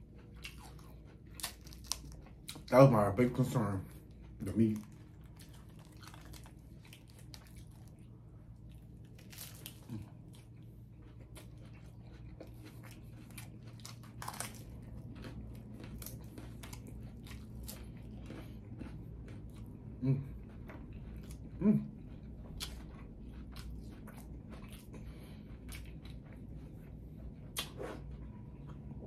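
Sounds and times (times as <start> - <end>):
person chewing food: 0.0 - 29.0.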